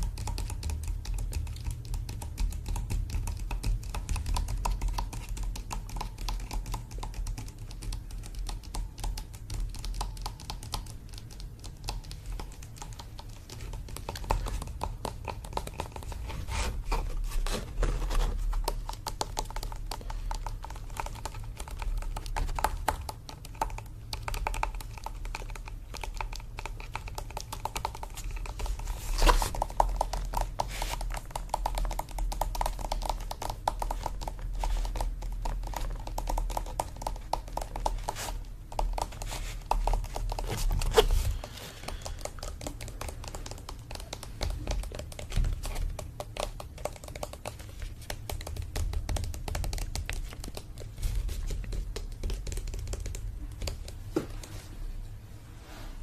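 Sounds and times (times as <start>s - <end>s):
finger tapping on canvas: 0.0s - 17.0s, 18.1s - 54.6s.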